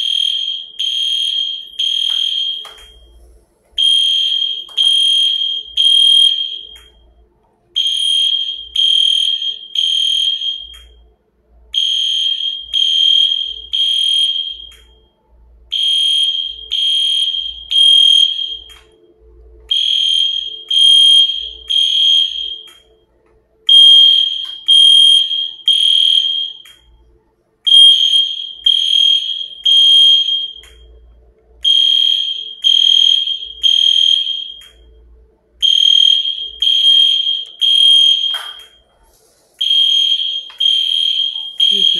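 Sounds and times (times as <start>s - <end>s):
smoke alarm beeping: 0.0s - 3.2s, 3.8s - 7.1s, 7.8s - 11.1s, 11.7s - 19.1s, 19.7s - 23.0s, 23.7s - 27.0s, 27.6s - 35.0s, 35.6s - 38.9s, 39.6s - 41.9s.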